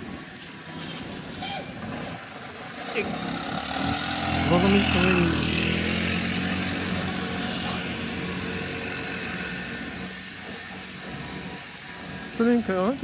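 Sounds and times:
vehicle engine running: 0:00.0 - 0:13.0.

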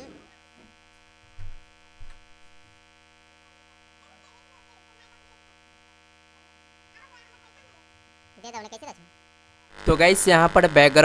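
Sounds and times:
mains hum and buzz: 0:00.0 - 0:11.0.

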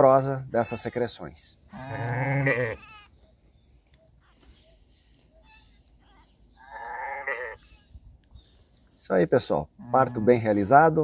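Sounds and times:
sheep bleating: 0:01.7 - 0:03.1, 0:06.6 - 0:07.7.

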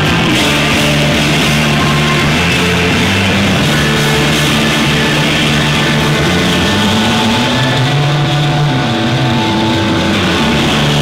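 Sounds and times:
distorted rock band playing: 0:00.0 - 0:11.0
droning low guitar and bass notes: 0:00.0 - 0:11.0.

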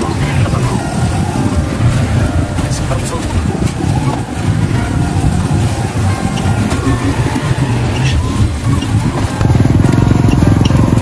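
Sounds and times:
motorcycle engine rumbling: 0:00.0 - 0:11.0
people's voices: 0:00.0 - 0:11.0.

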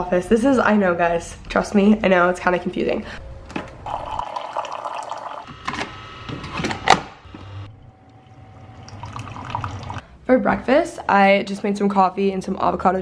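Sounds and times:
coffee streaming into a mug: 0:03.9 - 0:05.5, 0:08.1 - 0:10.0
coffee maker brewing: 0:03.9 - 0:06.0, 0:06.6 - 0:10.0.

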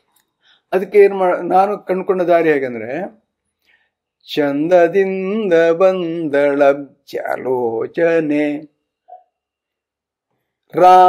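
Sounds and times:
man singing in held notes: 0:04.2 - 0:08.7, 0:10.7 - 0:11.0.

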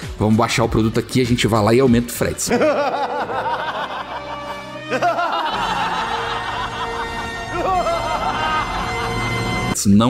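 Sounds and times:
music: 0:00.0 - 0:10.0
group laughing: 0:02.5 - 0:09.6.

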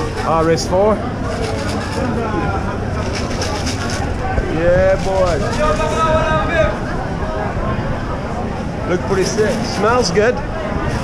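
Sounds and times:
people talking: 0:00.0 - 0:11.0
steady low rumble: 0:02.1 - 0:09.6.

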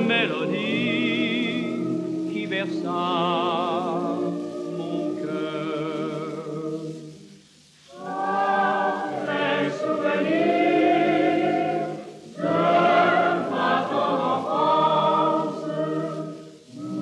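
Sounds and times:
male ensemble and boys' choir singing: 0:00.0 - 0:07.3, 0:07.9 - 0:17.0.

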